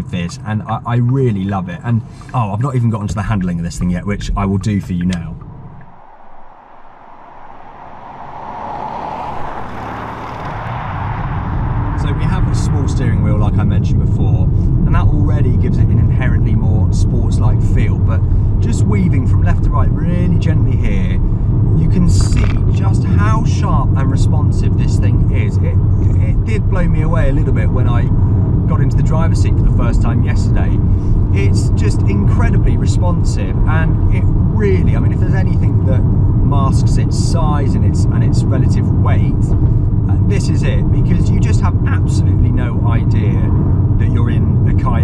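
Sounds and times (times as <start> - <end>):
car engine and road drone: 0.0 - 45.0
car approaching: 3.0 - 45.0
short wavering higher sounds: 5.3 - 12.0.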